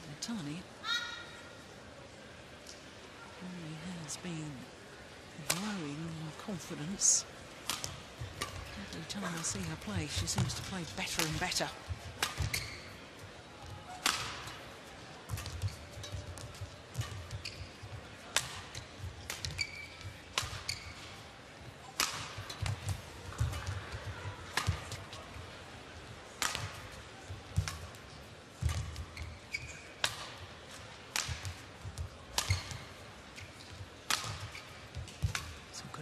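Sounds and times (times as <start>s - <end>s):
racket striking shuttlecock: 7.6s - 11.5s, 12.1s - 12.9s, 13.9s - 14.6s, 18.3s - 21.0s, 22.0s - 23.8s, 26.4s - 27.0s, 30.0s - 30.4s, 31.1s - 33.0s, 33.6s - 35.6s
shoe squeaks: 12.4s - 13.0s, 17.0s - 17.9s, 19.4s - 21.0s, 29.0s - 30.0s, 32.4s - 33.7s.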